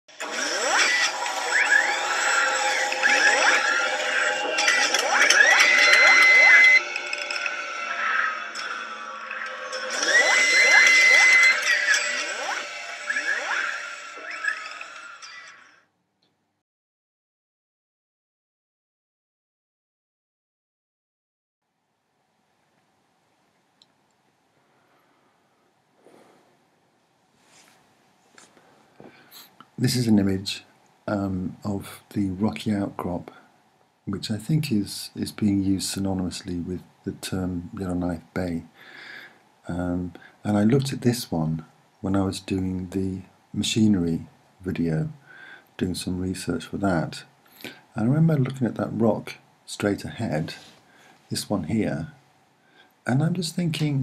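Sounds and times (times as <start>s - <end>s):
electronic intro music: 0.4s - 15.3s
held high tone: 2.4s - 15.6s
man speaking: 29.8s - 33.4s, 34.1s - 38.7s, 39.7s - 45.2s, 45.8s - 47.3s, 47.9s - 52.2s, 53.1s - 54.0s.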